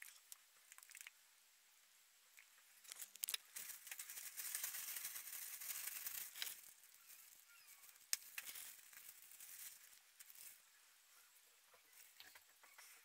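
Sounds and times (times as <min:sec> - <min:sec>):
plastic gloves crinkling: 0:02.7 - 0:10.7.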